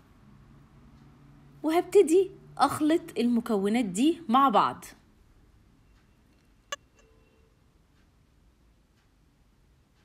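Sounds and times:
faint brief tone: 5.8s - 7.7s.

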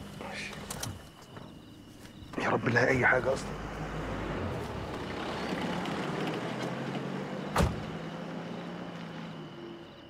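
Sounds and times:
car door slamming: 7.5s - 8.0s.

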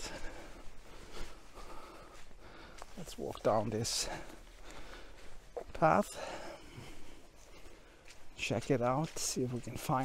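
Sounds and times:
footsteps on forest floor: 0.0s - 10.0s.

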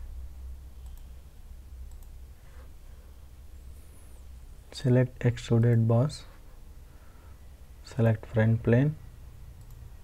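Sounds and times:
steady low hum: 0.0s - 10.0s
computer mouse clicks: 0.8s - 1.1s, 1.8s - 2.2s, 9.6s - 9.8s.

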